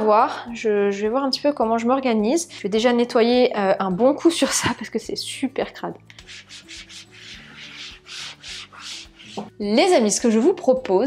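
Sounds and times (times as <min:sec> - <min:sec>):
cloth scrubbing a shelf: 0:06.3 - 0:09.5.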